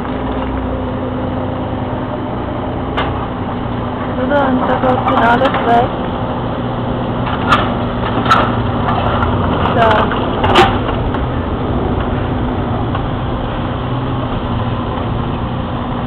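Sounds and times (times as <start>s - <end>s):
diesel engine drone: 0.0s - 16.0s.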